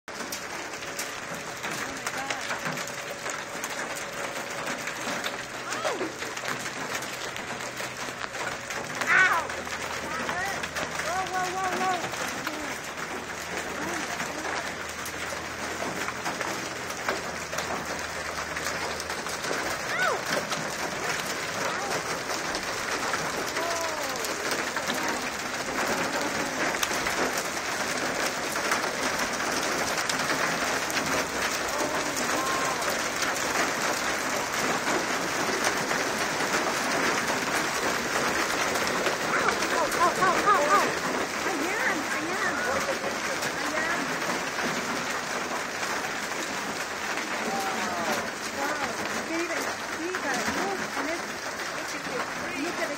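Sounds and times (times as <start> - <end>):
hail pelting pavement and car: 0.1 - 52.9.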